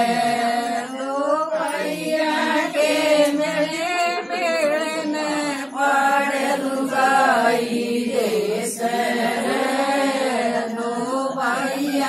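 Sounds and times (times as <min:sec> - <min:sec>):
women singing folk song: 0:00.0 - 0:12.0.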